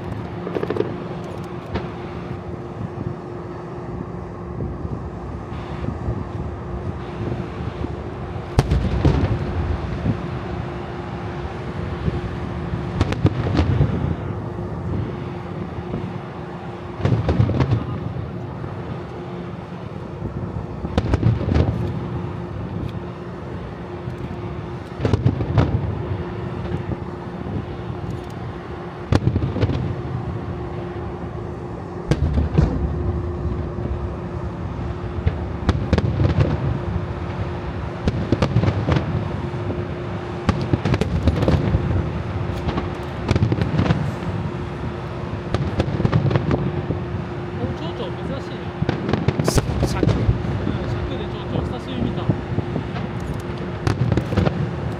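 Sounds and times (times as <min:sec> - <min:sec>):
fireworks booming and crackling: 0:00.0 - 0:03.4, 0:04.0 - 0:54.9.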